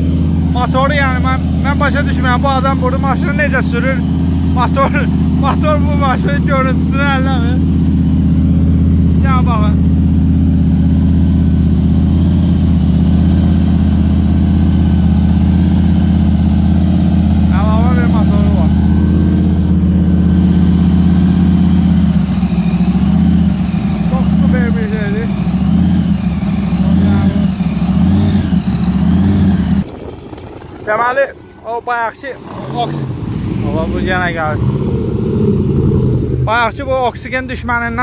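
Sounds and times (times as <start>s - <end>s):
supercharged car engine running: 0.0s - 38.0s.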